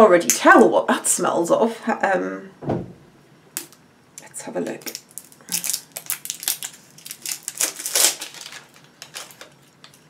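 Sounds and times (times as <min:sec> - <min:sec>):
packaging crinkling: 0:04.8 - 0:10.0.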